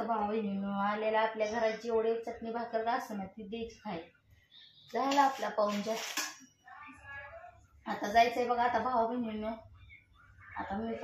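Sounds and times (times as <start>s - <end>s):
woman's voice: 0.0s - 4.2s, 4.9s - 6.2s, 7.8s - 11.0s.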